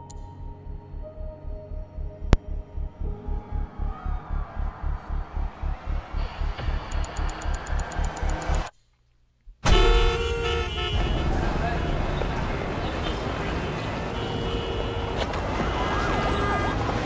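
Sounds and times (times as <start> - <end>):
pulsing low beat with ticking: 0.0 - 8.7
street traffic: 4.0 - 8.7, 9.7 - 17.0
sudden loud hit: 9.6 - 13.0
car horns honking: 9.6 - 17.0.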